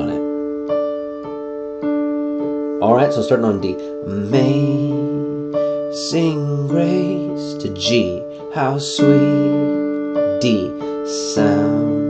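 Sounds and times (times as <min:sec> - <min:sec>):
digital piano broken chord: 0:00.0 - 0:12.0.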